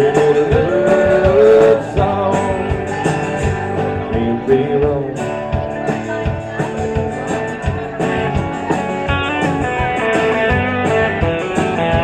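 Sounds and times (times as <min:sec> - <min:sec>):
country-rock band playing: 0:00.0 - 0:12.0
lead guitar bending notes: 0:00.0 - 0:12.0.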